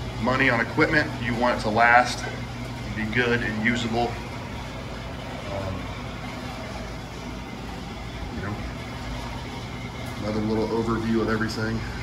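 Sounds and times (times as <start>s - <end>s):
room appliance humming: 0.0s - 12.0s.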